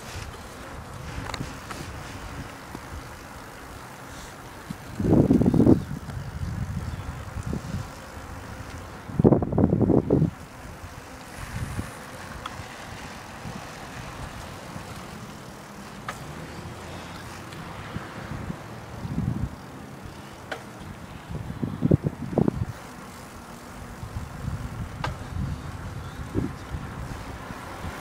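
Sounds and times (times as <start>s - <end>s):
low rumble of motion on pavement: 0.0s - 28.0s
wind buffeting microphone: 0.0s - 28.0s.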